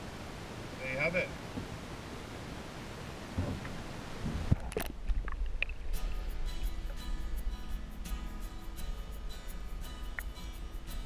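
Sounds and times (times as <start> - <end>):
wind and water hiss: 0.0 - 11.0
background music: 5.9 - 11.0.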